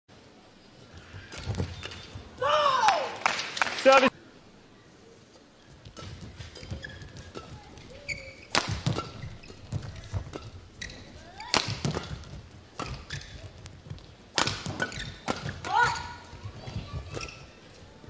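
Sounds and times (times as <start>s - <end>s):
shoes squeaking on court: 0.8s - 2.4s, 5.3s - 18.0s
racket striking shuttlecock: 5.9s - 16.1s.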